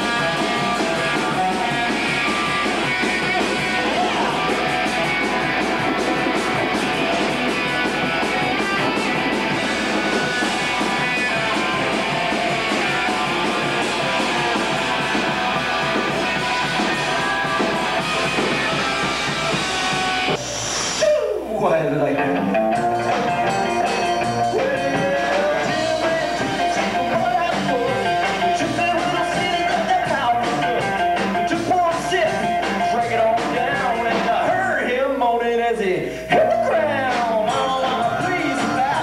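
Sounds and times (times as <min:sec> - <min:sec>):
upright bass: 0:00.0 - 0:20.4, 0:21.5 - 0:34.9, 0:36.3 - 0:39.0
electric guitar: 0:00.0 - 0:21.3, 0:22.0 - 0:34.9, 0:36.2 - 0:39.0
drums: 0:00.0 - 0:39.0.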